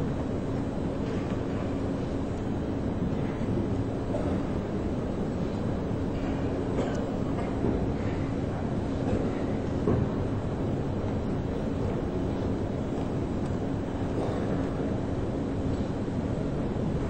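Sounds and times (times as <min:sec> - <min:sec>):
indoor arena background hum: 0:00.0 - 0:17.0.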